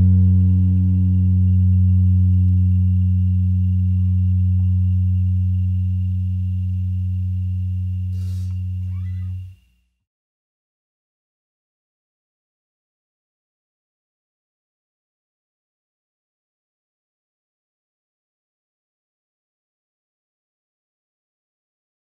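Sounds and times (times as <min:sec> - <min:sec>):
electric instruments holding low note: 0:00.0 - 0:09.6
short noise: 0:01.7 - 0:09.6
faint steady high tone: 0:01.7 - 0:10.0.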